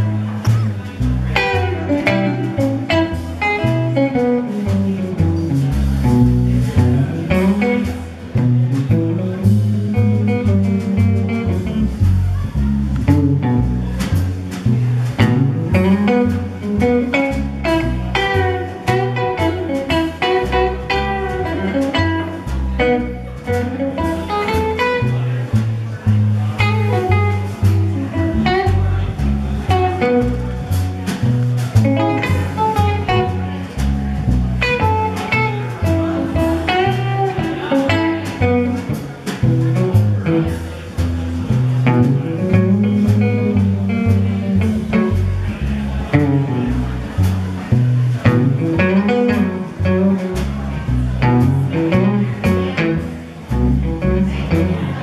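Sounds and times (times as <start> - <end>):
drums: 0.0 - 55.0
electric guitar melody: 0.0 - 55.0
upright bass: 0.0 - 55.0.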